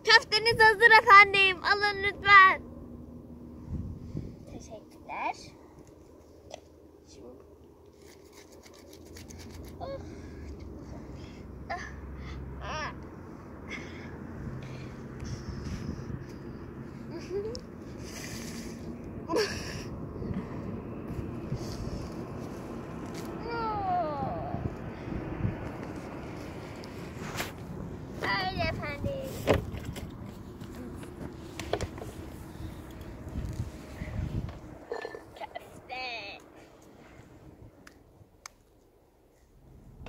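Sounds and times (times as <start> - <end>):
low rumble: 9.7 - 37.8.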